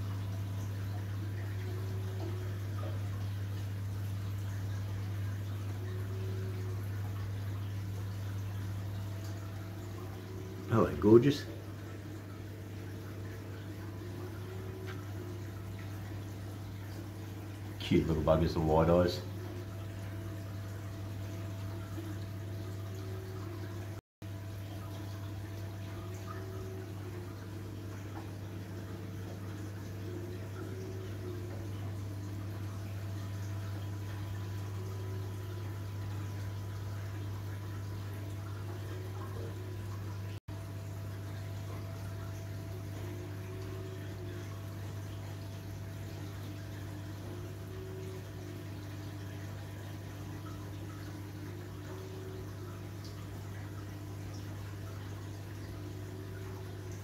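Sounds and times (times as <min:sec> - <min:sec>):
low pump hum: 0:00.0 - 0:57.0
water trickling: 0:00.0 - 0:57.0.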